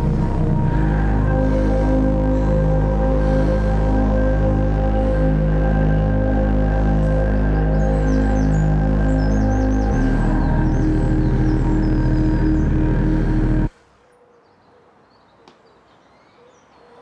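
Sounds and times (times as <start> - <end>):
sustained low music chords: 0.0 - 13.7.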